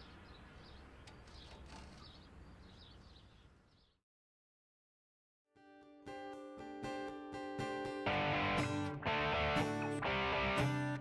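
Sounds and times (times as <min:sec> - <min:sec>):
birds chirping: 0:00.0 - 0:04.0.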